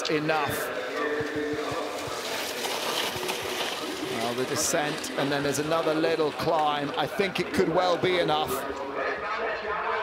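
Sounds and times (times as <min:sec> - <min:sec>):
skis hissing on snow: 0:01.9 - 0:05.4.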